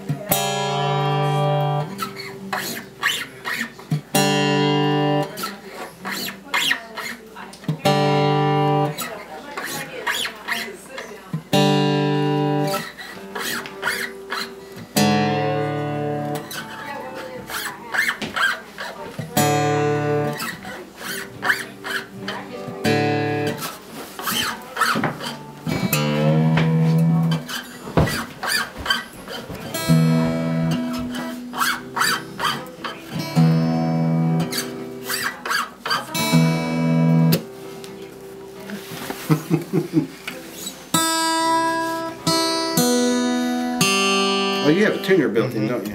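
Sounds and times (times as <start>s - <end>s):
acoustic guitar strings plucked: 0.0s - 45.9s.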